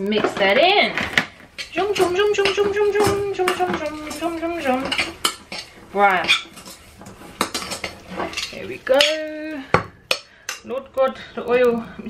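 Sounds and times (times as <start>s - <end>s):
spoon scraping a steel saucepan: 0.2s - 10.7s.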